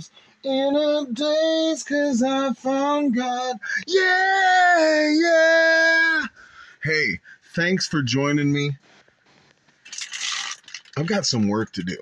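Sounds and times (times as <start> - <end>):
plastic bag crinkling: 9.8 - 11.2.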